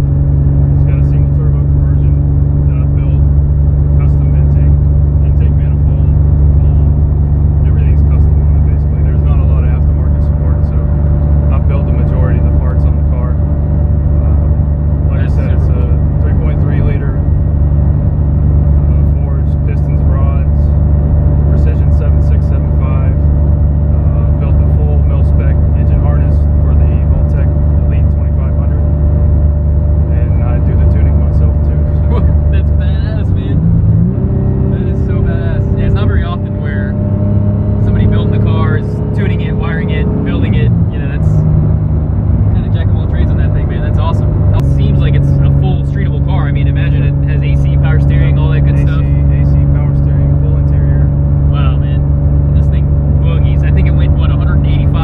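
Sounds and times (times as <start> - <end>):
car engine from inside cabin: 0.0 - 55.0
person talking: 0.8 - 3.2, 4.0 - 6.9, 7.6 - 10.9, 11.5 - 13.4, 15.1 - 17.2, 18.9 - 20.6, 21.5 - 23.2, 24.0 - 28.8, 30.1 - 33.6, 34.7 - 37.0, 37.8 - 41.4, 42.6 - 52.0, 52.6 - 55.0.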